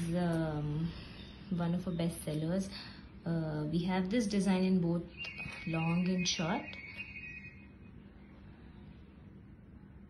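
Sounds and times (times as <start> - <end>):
faint high-pitched whine: 0.0 - 10.0
faint low hum: 0.0 - 10.0.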